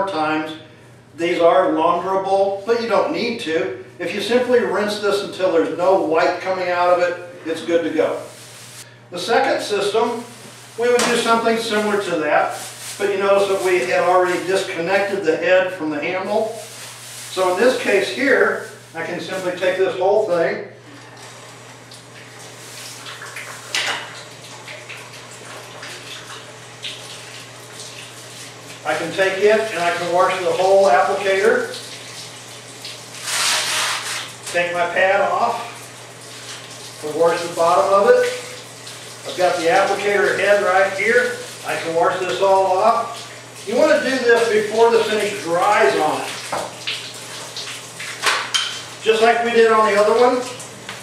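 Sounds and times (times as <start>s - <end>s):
hose water spraying into sink: 8.0s - 15.2s, 16.1s - 20.3s, 21.0s - 51.0s.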